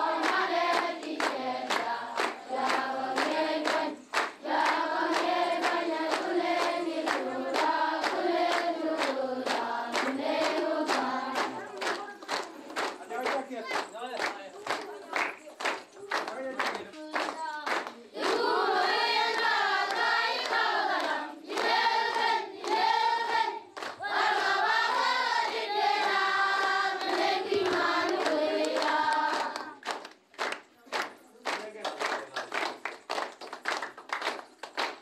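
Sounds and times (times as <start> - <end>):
children singing in unison: 0.0 - 11.6, 18.2 - 29.8
rhythmic hand claps: 0.0 - 35.0.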